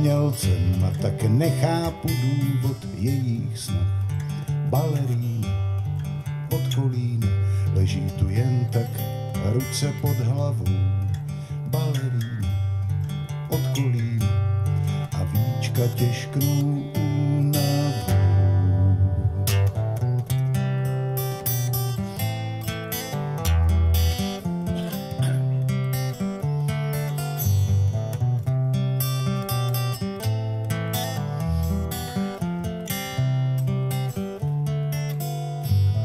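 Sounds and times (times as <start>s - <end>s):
acoustic guitar strummed chords: 0.0s - 36.0s.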